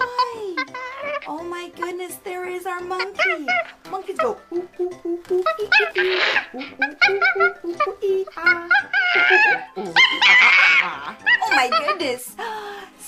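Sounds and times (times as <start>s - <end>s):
woman imitating monkey hoots: 3.0s - 11.9s.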